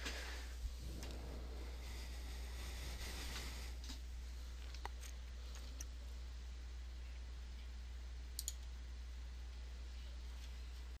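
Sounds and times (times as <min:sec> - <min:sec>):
steady low hum: 0:00.0 - 0:11.0
computer mouse clicks: 0:08.4 - 0:08.7.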